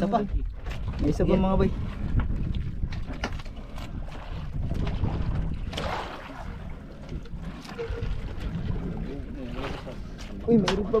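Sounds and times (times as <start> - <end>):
water lapping against boat: 0.0 - 11.0
wind buffeting microphone: 0.0 - 11.0.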